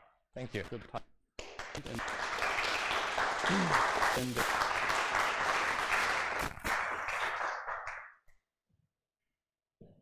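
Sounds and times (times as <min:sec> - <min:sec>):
audience applauding: 0:01.4 - 0:08.2.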